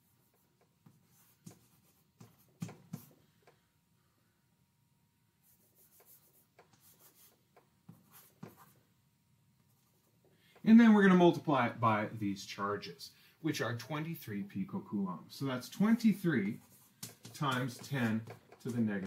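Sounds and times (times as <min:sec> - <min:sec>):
chalk tapping and scratching on blackboard: 0:00.0 - 0:03.6, 0:05.4 - 0:08.8, 0:15.6 - 0:19.0.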